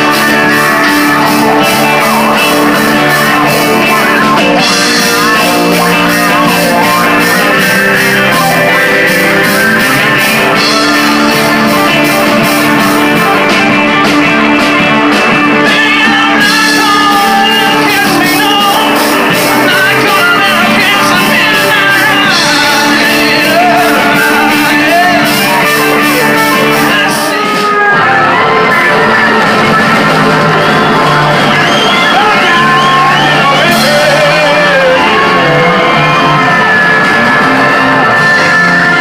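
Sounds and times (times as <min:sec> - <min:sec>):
bass guitar: 0:00.0 - 0:39.0
electric guitars: 0:00.0 - 0:39.0
live rock band playing: 0:00.0 - 0:39.0
person singing: 0:00.0 - 0:39.0.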